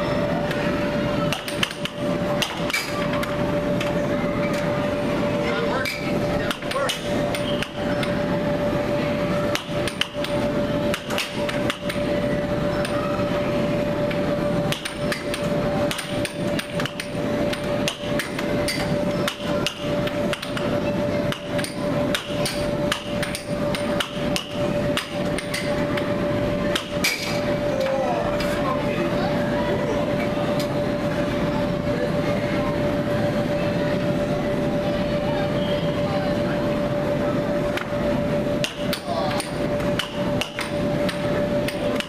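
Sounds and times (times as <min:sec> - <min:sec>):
steady hum: 0:00.0 - 0:42.0
air hockey puck clacking: 0:01.3 - 0:03.9, 0:05.8 - 0:08.2, 0:09.5 - 0:12.1, 0:14.7 - 0:20.7, 0:21.3 - 0:26.1, 0:38.6 - 0:42.0.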